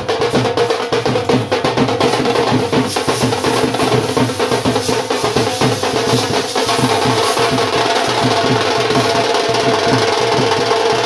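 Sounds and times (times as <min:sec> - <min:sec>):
barrel drum beaten with sticks: 0:00.0 - 0:11.0.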